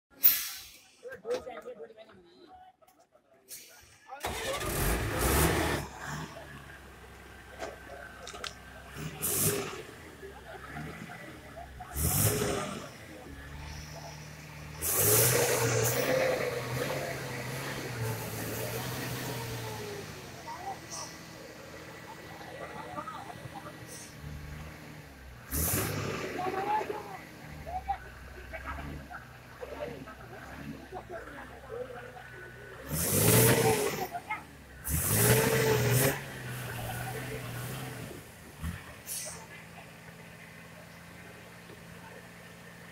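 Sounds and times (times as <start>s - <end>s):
minibus engine running: 3.5s - 42.9s
engine revving hard: 4.2s - 6.7s, 8.9s - 27.7s, 32.7s - 39.4s.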